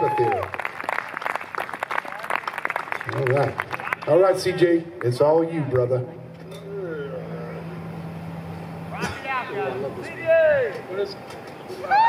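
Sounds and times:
sound system hum: 0:00.0 - 0:12.0.

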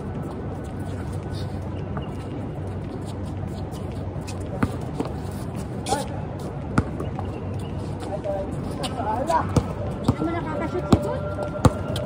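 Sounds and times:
basketball bouncing on court: 0:06.8 - 0:07.0.

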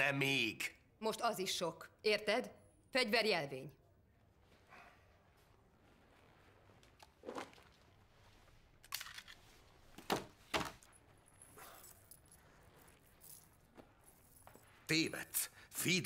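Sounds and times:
metal chain jingling: 0:11.0 - 0:14.9.

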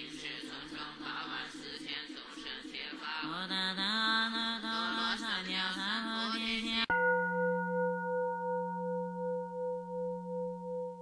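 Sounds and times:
bowl bell ringing: 0:06.9 - 0:11.0.

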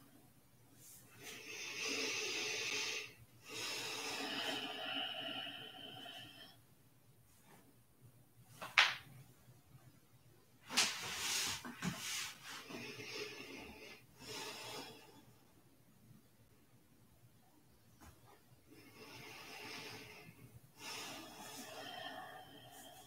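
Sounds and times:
person breathing slowly: 0:00.8 - 0:06.6, 0:11.2 - 0:15.4, 0:18.7 - 0:23.0.

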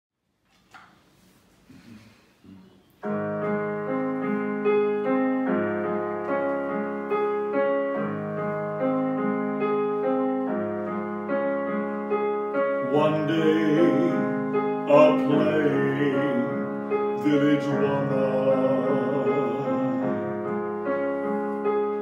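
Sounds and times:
digital piano playing: 0:02.9 - 0:22.0.

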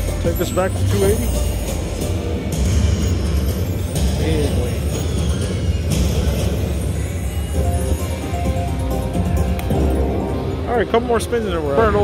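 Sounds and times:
slot machine win music: 0:00.0 - 0:12.0.

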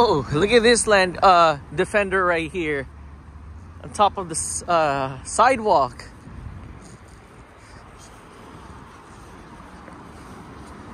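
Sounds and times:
outdoor rumble and hiss: 0:00.0 - 0:10.9.

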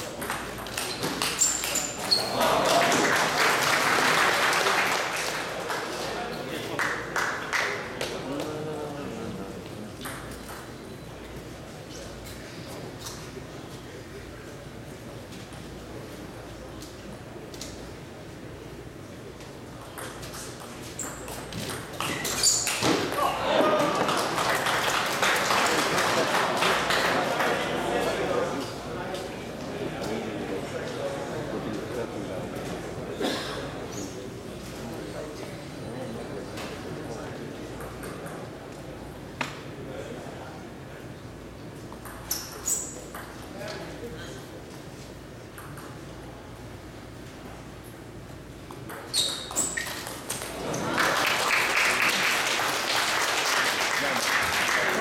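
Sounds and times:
murmur of spectators' voices: 0:00.0 - 0:55.0.

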